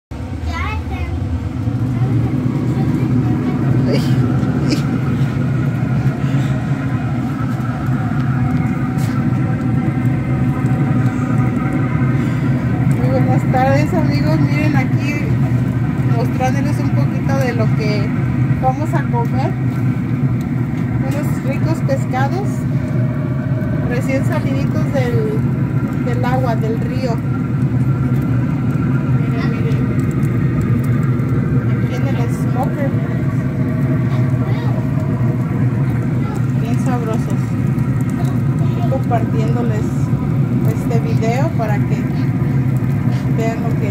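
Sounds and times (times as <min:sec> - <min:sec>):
low mechanical hum: 0:00.2 - 0:43.9
people talking: 0:00.5 - 0:01.2, 0:01.8 - 0:05.0, 0:12.9 - 0:15.4, 0:16.0 - 0:19.6, 0:21.0 - 0:22.7, 0:23.9 - 0:25.4, 0:26.0 - 0:27.2, 0:29.2 - 0:30.0, 0:31.8 - 0:34.9, 0:35.8 - 0:42.3, 0:43.1 - 0:43.9.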